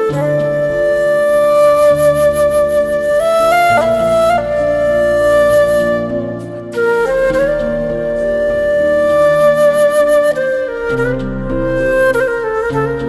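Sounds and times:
slow background melody: 0:00.0 - 0:13.0.

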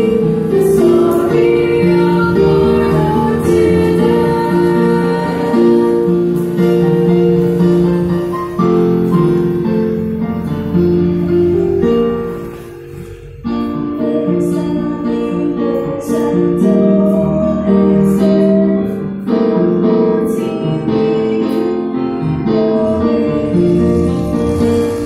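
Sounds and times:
girl singing: 0:00.0 - 0:06.4, 0:13.6 - 0:25.0
piano playing hymn tune: 0:00.0 - 0:25.0.

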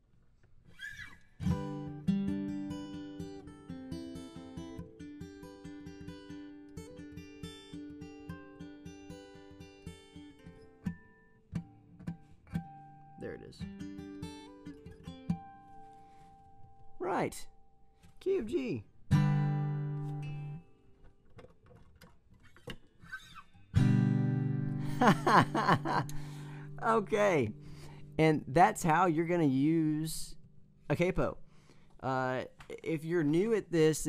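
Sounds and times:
acoustic guitar strummed and picked: 0:00.8 - 0:34.0.

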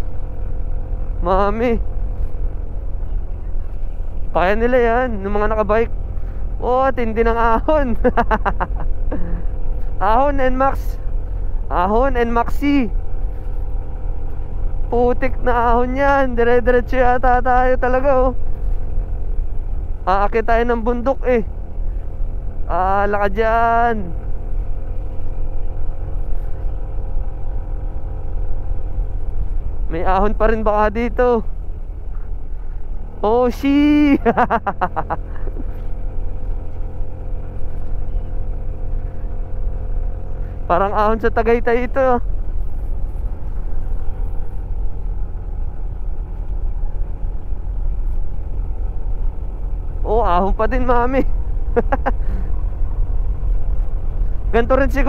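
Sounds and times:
low rumble: 0:00.0 - 0:55.0
scooter engine under load: 0:00.0 - 0:55.0
wind and road noise: 0:00.0 - 0:55.0.

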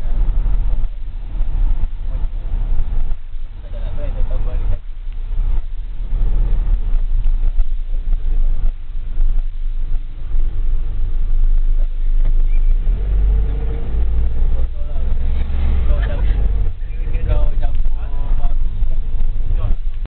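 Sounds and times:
engine and road rumble: 0:00.0 - 0:20.0.

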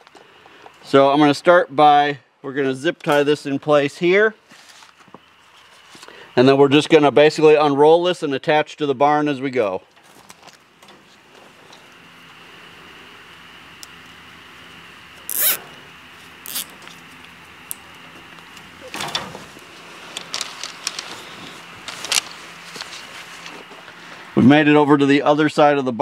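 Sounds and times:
wire clicks and rustles: 0:09.9 - 0:11.9, 0:15.2 - 0:23.9
zip tie ratcheting: 0:15.3 - 0:15.6, 0:16.4 - 0:16.8.

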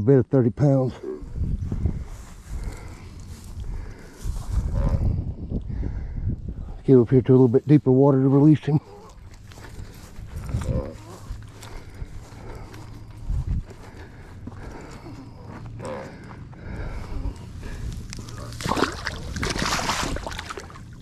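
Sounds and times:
short low grunts: 0:00.8 - 0:06.8, 0:08.8 - 0:20.5
footsteps rustling through dry grass: 0:01.1 - 0:05.2, 0:07.4 - 0:19.7.

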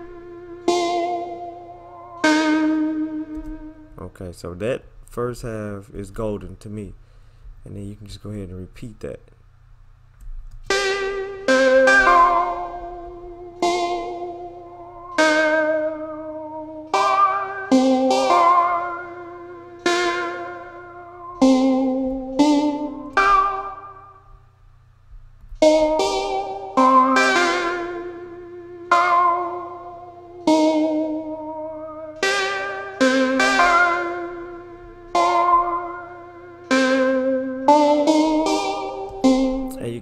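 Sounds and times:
synthesizer melody: 0:00.0 - 0:04.0, 0:10.7 - 0:24.4, 0:25.6 - 0:40.0.

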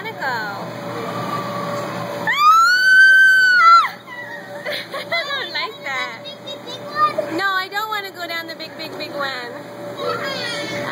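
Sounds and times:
girl screaming: 0:02.3 - 0:04.5.

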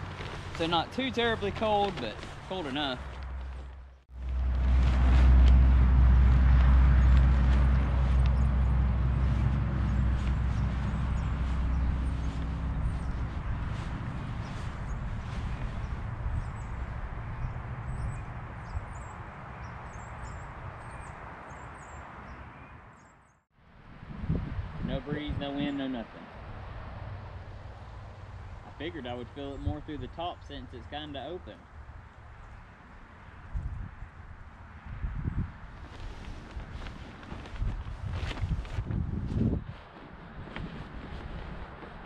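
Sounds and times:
branches and leaves rustling: 0:00.0 - 0:22.6, 0:35.3 - 0:42.0
wind buffeting microphone: 0:04.2 - 0:22.4, 0:23.8 - 0:30.2, 0:33.3 - 0:42.0.

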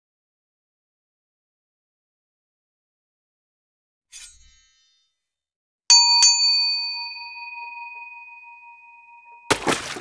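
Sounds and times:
bright notification bell ringing: 0:05.9 - 0:09.5.

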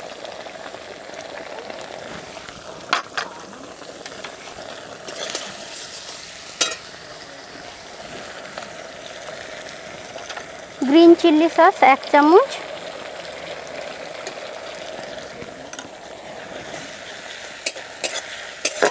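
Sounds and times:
vegetables sizzling in oil: 0:00.0 - 0:18.9
metal spatula scraping wok: 0:17.6 - 0:18.9.

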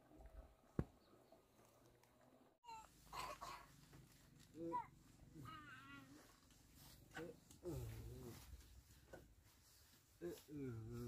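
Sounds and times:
faint outdoor noise: 0:00.0 - 0:11.0.

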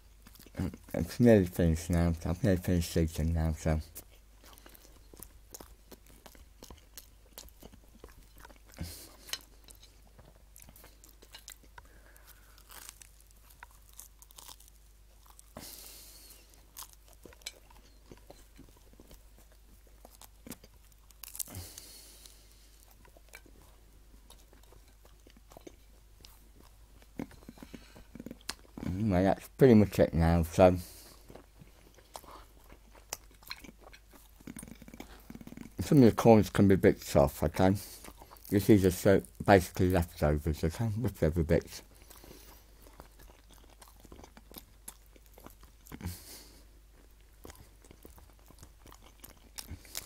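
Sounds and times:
chewing and crunching toast: 0:00.0 - 0:50.0.

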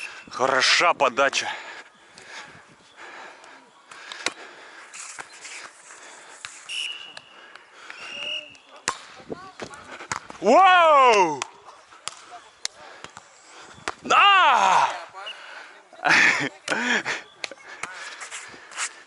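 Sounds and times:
hands slapping volleyball: 0:11.1 - 0:13.2
loud drawn-out shout: 0:14.1 - 0:15.0.

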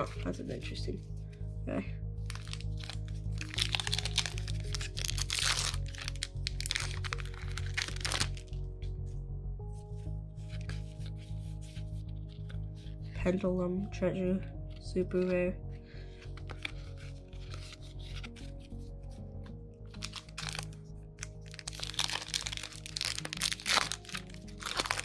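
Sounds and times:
background music: 0:00.0 - 0:25.0
foil wrapper crinkling and tearing: 0:02.2 - 0:08.6, 0:16.2 - 0:18.8, 0:19.9 - 0:25.0
cards rustling: 0:02.2 - 0:08.9, 0:09.8 - 0:13.1, 0:16.1 - 0:25.0.

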